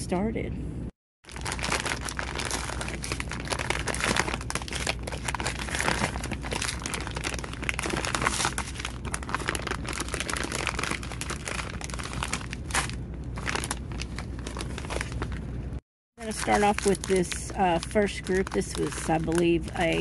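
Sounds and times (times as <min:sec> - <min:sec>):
plastic bags crinkling: 0:01.2 - 0:15.5, 0:16.2 - 0:20.0.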